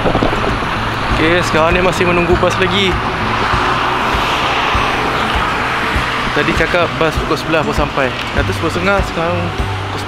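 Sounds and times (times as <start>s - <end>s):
music with steady beat: 0.0s - 10.0s
road traffic: 0.0s - 10.0s.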